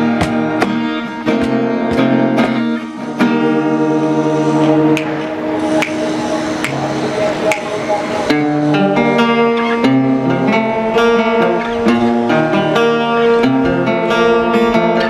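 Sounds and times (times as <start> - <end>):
acoustic guitars playing: 0.0 - 15.0
cajon beats: 0.0 - 15.0.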